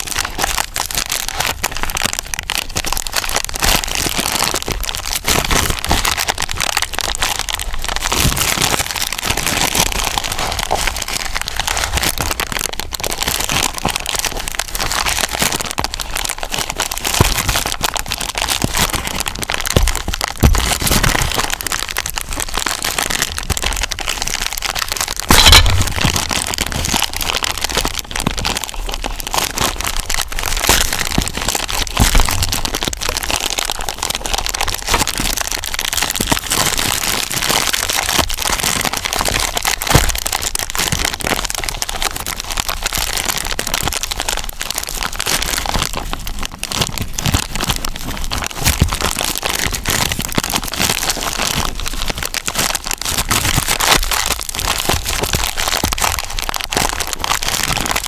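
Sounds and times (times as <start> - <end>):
plastic bag crinkling: 0.0 - 58.0.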